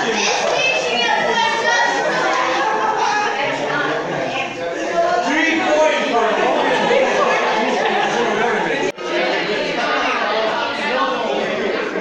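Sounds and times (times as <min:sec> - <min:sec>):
roomful of people chattering: 0:00.0 - 0:12.0.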